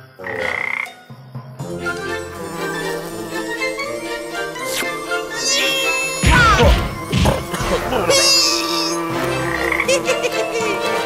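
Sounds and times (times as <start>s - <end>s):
short high buzz: 4.5s - 7.1s
cartoon frog croaking: 4.8s - 10.5s.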